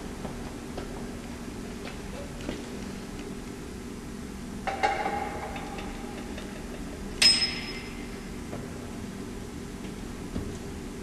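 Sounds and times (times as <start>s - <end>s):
low room hum: 0.0s - 11.0s
sharp metallic clink: 7.2s - 8.1s.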